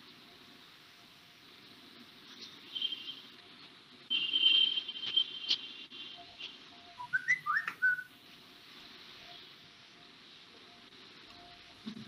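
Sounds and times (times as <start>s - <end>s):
high steady whistle tone: 7.0s - 8.1s.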